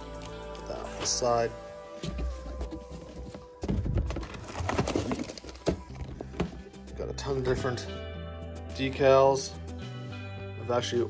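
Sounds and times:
background music: 0:00.0 - 0:11.0
plastic bag crinkling: 0:03.9 - 0:06.3.

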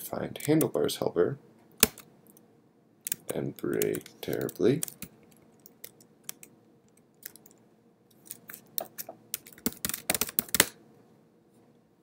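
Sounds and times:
keystrokes on computer keyboard: 0:03.1 - 0:07.6, 0:08.3 - 0:10.7.

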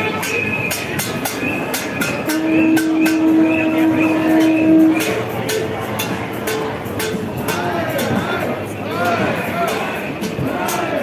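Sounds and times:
marching crowd: 0:00.0 - 0:11.0
long held horn note: 0:02.3 - 0:05.2.

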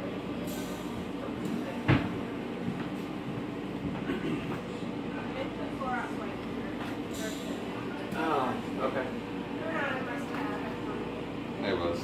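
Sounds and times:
faint voices: 0:00.1 - 0:12.0.

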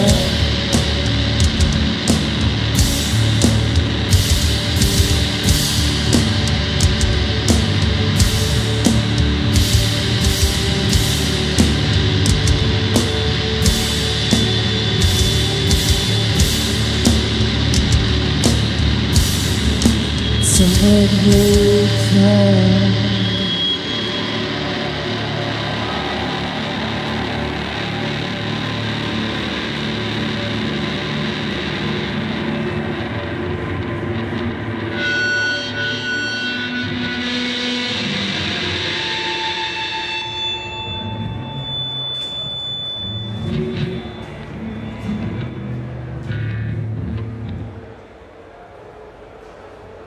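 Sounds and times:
distorted electric guitars and bass: 0:00.0 - 0:48.1
steady high guitar tones: 0:00.0 - 0:48.5.

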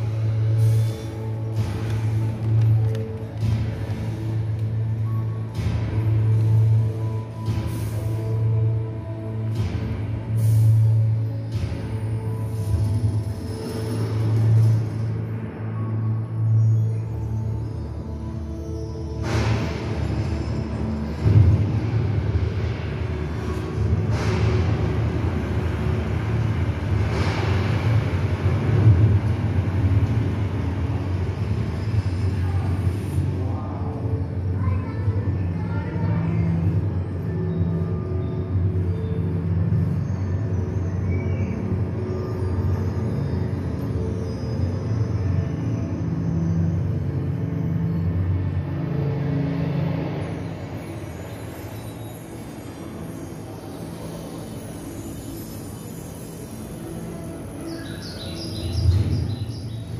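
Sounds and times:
low soundtrack rumble over loudspeakers: 0:00.0 - 0:59.9.

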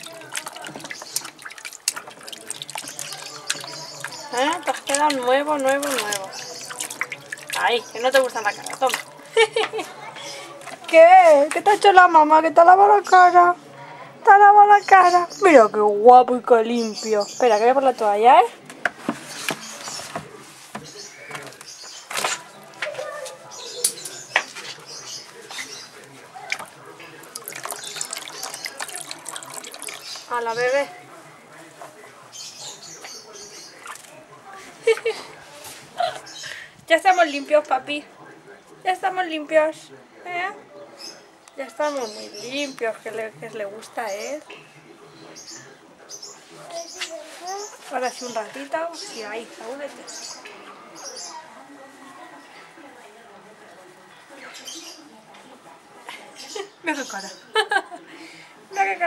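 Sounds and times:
water splashing in plastic tub: 0:00.0 - 0:11.8, 0:18.7 - 0:31.7, 0:32.4 - 0:35.7.

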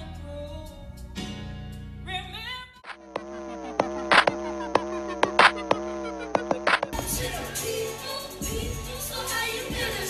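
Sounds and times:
buzzing electronic drone: 0:02.8 - 0:07.6
sharp percussive hits: 0:02.9 - 0:07.4.

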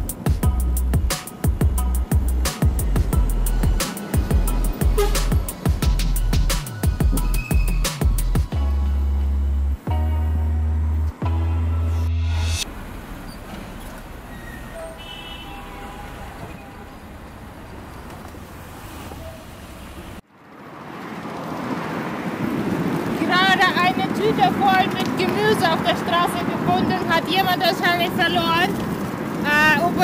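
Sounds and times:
wind and road noise cycling: 0:00.0 - 0:11.8, 0:12.5 - 0:30.0
electronic music with heavy bass: 0:00.0 - 0:12.6
city street traffic: 0:00.0 - 0:30.0
woman talking: 0:23.2 - 0:28.8, 0:29.4 - 0:30.0.

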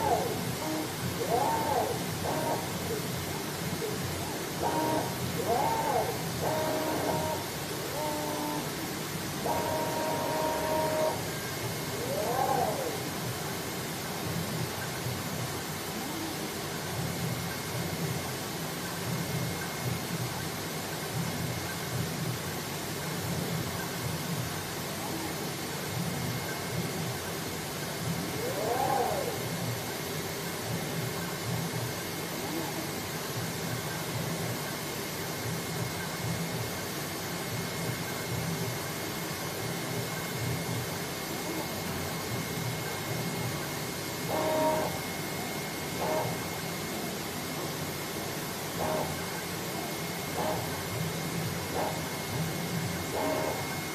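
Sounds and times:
cutting machine hissing and whining: 0:00.0 - 0:14.3, 0:28.2 - 0:30.4, 0:40.9 - 0:53.9.

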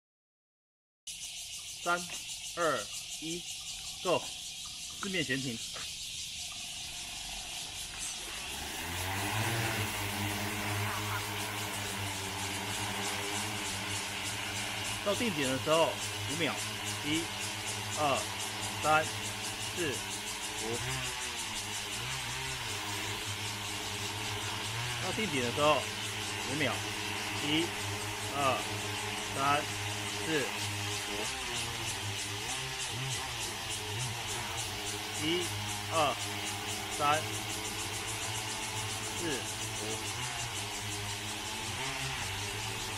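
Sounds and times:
drone rotors spinning: 0:01.1 - 0:42.9
insects chirring: 0:01.1 - 0:42.9.

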